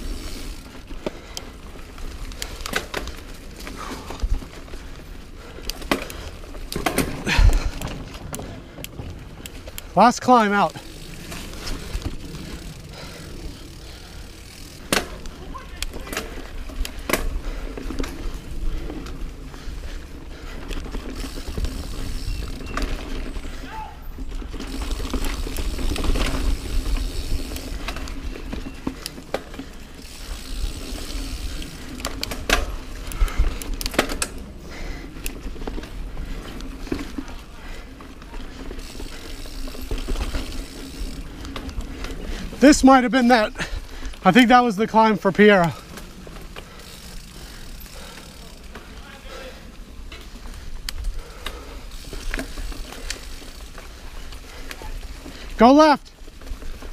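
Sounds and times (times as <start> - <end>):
bike tyres rolling on dirt: 0.0 - 56.9
bike knocks and rattles: 5.8 - 9.4.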